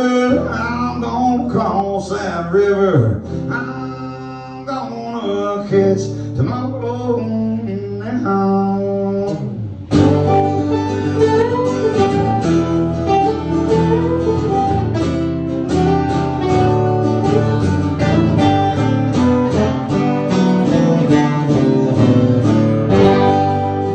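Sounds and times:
acoustic guitars playing country music: 0.0 - 23.9.

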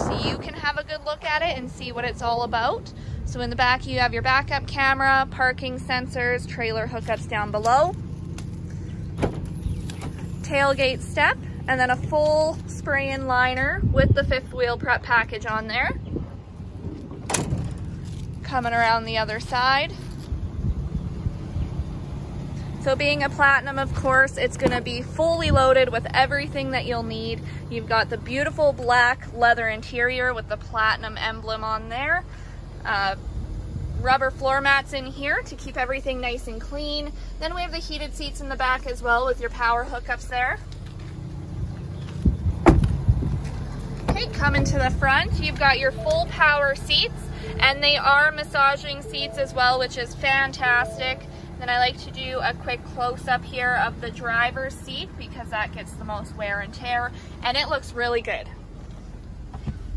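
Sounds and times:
wind rumble: 0.0 - 57.7
car door shutting: 9.2 - 10.4, 17.2 - 17.9, 42.0 - 44.3
microphone handling noise: 41.7 - 45.7.

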